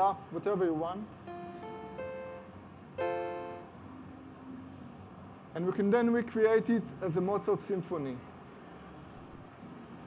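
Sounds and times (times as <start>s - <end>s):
electronic keyboard piano notes: 1.2s - 3.8s.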